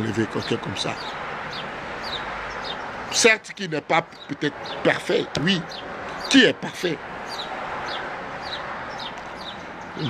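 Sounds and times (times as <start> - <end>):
bird chirping: 0.0 - 3.3, 4.0 - 10.0.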